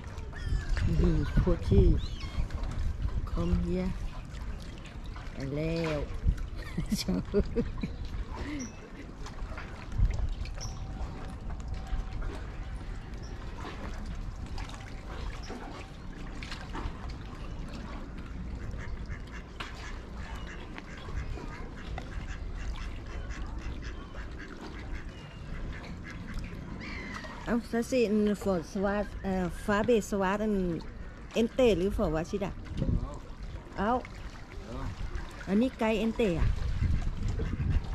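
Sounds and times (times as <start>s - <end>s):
waterbirds calling: 0.0s - 37.9s.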